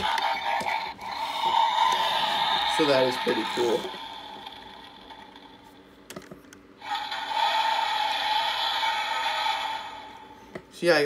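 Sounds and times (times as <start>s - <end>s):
electronic toy sound effect: 0.0s - 5.7s, 6.8s - 10.3s.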